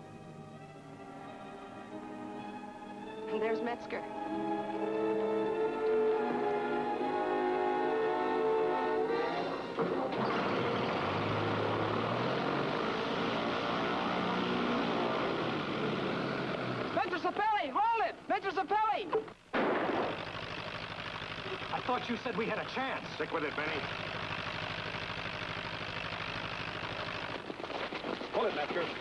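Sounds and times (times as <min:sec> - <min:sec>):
orchestral film music: 0:00.0 - 0:11.4
light aircraft engine running: 0:03.3 - 0:17.0, 0:20.1 - 0:29.0.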